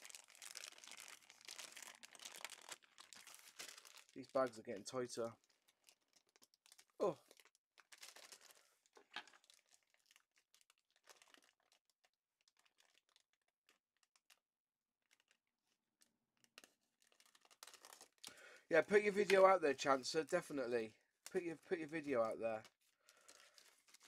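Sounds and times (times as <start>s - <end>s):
plastic bag crinkling: 0.0s - 14.4s, 15.0s - 19.6s, 21.2s - 24.0s.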